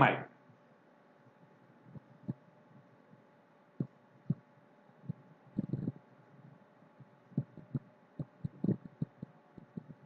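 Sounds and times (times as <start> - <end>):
dull low thumps: 3.8 - 6.0, 7.0 - 10.0.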